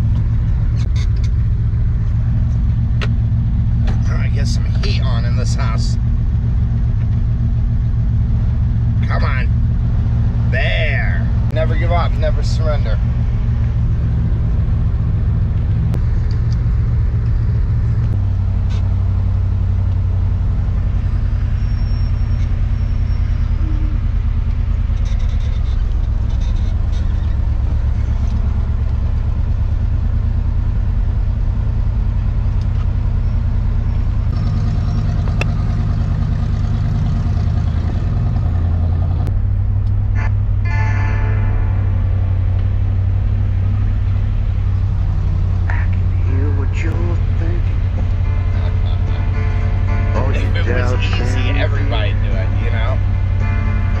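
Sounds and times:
truck engine running while driving: 0:00.0 - 0:54.0.

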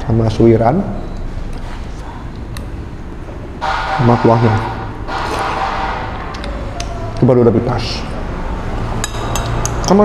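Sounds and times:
steady background hum: 0:00.0 - 0:10.0
spoon clicks: 0:09.0 - 0:10.0.

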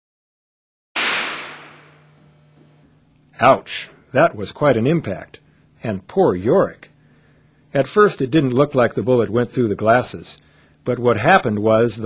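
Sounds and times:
handgun shot echoing indoors: 0:01.0 - 0:02.1.

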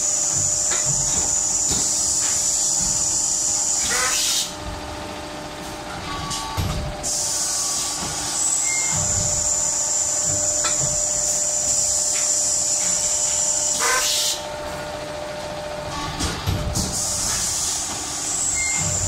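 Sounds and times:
machine hum: 0:00.0 - 0:19.0.

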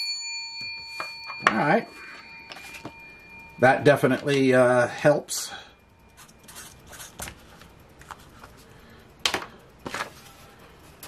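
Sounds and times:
bell ding ringing: 0:00.0 - 0:06.2.

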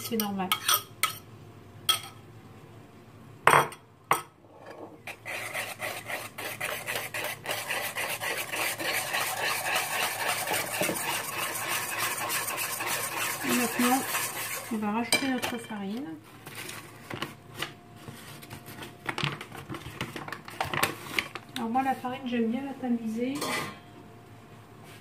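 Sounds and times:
whisk beating batter in bowl: 0:05.1 - 0:15.1.

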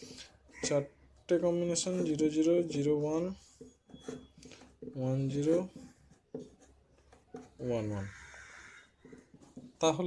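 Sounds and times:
pen writing strokes: 0:01.8 - 0:09.9.

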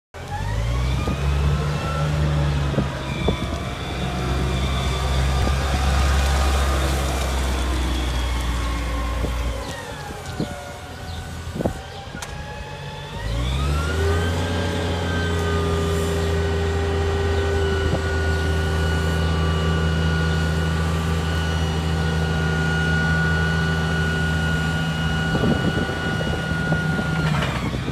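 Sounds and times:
forklift engine running: 0:00.2 - 0:27.9.

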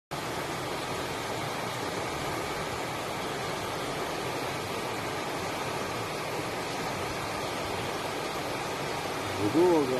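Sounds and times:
steady rushing noise: 0:00.1 - 0:09.9.

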